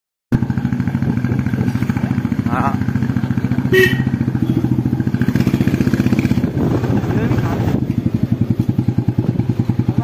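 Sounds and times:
motorcycle engine pulsing: 0:00.4 - 0:10.0.

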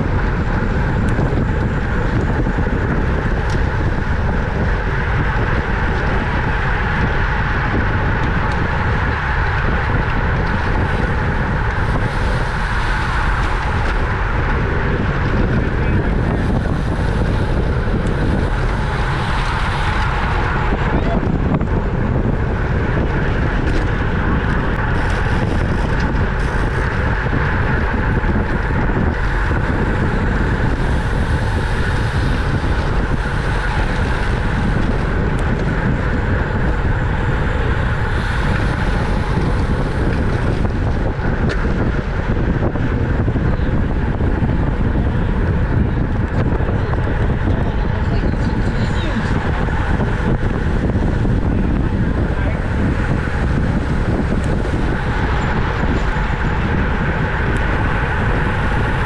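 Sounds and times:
tyre and road noise: 0:00.0 - 0:59.0
wind rushing over microphone: 0:00.0 - 0:59.0.

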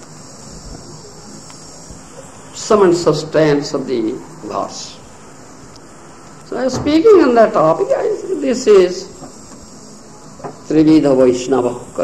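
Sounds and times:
high-pitched background hiss: 0:00.0 - 0:12.0.

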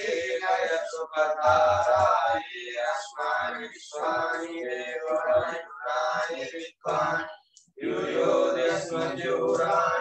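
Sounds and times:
voices chanting mantras: 0:00.0 - 0:10.0.

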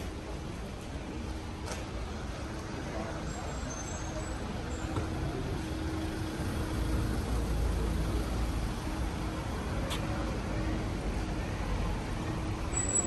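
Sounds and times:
street traffic noise: 0:00.0 - 0:13.0
vehicle engine rumbling: 0:00.0 - 0:13.0.

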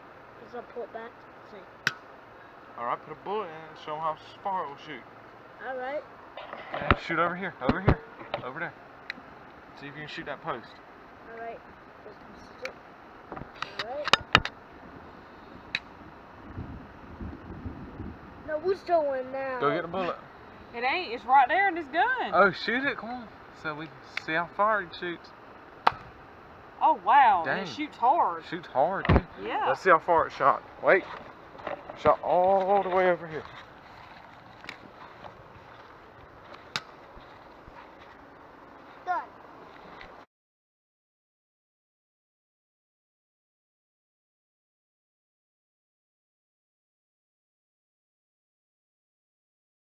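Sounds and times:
outdoor background noise: 0:00.0 - 0:40.3.

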